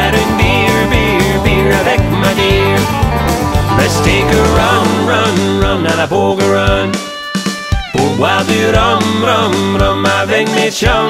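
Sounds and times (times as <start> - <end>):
upbeat country band: 0.0 - 11.0
sliding lead guitar line: 0.1 - 9.7.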